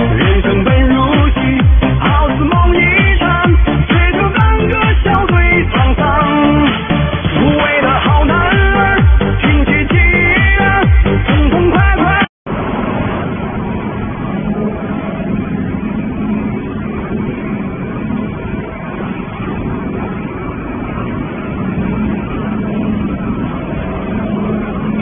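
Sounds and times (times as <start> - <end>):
low hum: 0.0 - 25.0
machinery rumble: 0.0 - 25.0.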